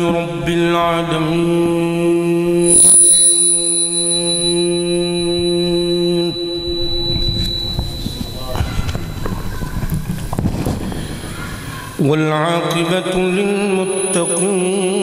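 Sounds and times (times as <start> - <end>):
man chanting through loudspeaker: 0.0 - 2.6, 12.0 - 15.0.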